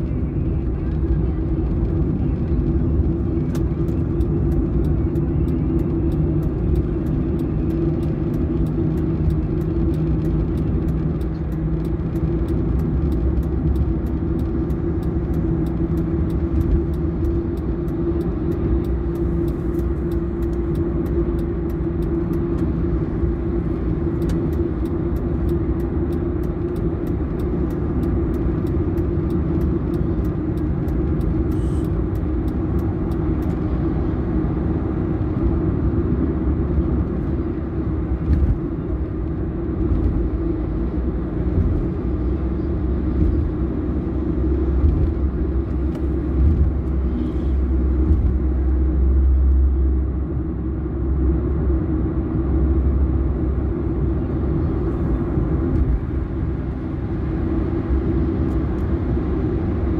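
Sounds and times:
car cabin road drone: 0:00.0 - 0:59.9.

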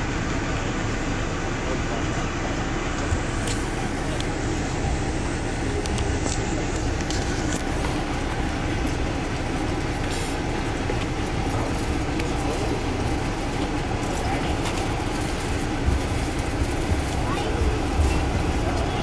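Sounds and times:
train wheels rumbling on rails: 0:00.0 - 0:19.0.

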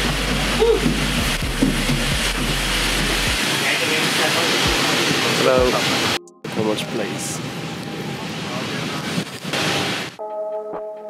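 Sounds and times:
sustained electronic chord: 0:00.0 - 0:09.2
airliner cabin noise: 0:00.0 - 0:10.2.

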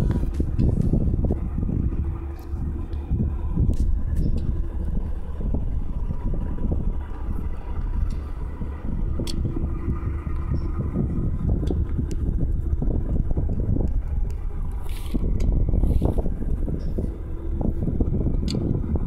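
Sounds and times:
diesel locomotive rumbling: 0:00.0 - 0:19.0
wind buffeting microphone: 0:00.0 - 0:19.0.

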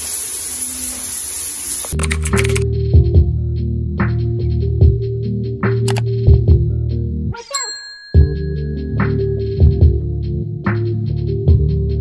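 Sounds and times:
background music with steady beat: 0:02.0 - 0:07.2, 0:08.1 - 0:12.0
bell-like notification ding: 0:07.5 - 0:09.4.

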